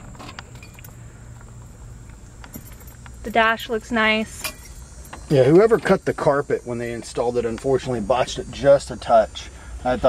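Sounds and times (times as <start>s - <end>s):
low steady hum: 0.0s - 10.0s
light clicks and clinks: 0.2s - 1.5s, 2.1s - 3.5s.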